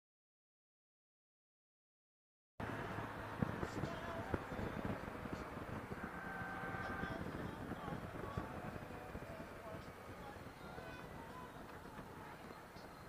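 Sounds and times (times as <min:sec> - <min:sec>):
wind on microphone: 0:02.6 - 0:13.0.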